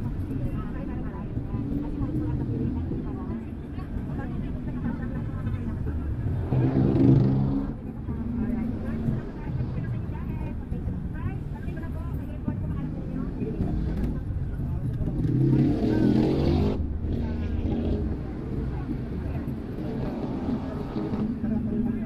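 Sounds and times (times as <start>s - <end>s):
car engine and road rumble: 0.0s - 22.0s.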